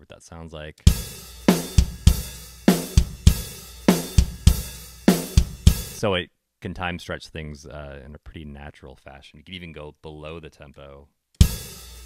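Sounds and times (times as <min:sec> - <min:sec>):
rock drum groove: 0:00.9 - 0:06.0, 0:11.4 - 0:12.0.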